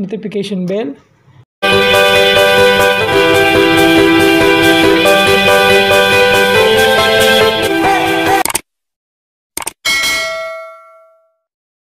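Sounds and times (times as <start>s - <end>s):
notification bell ding: 9.9s - 11.4s.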